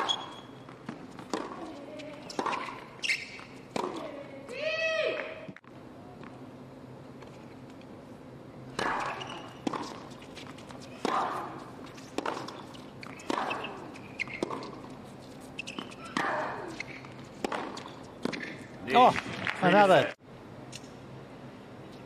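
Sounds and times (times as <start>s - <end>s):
racket striking tennis ball: 0.0s - 4.3s, 8.7s - 14.9s, 15.6s - 19.5s.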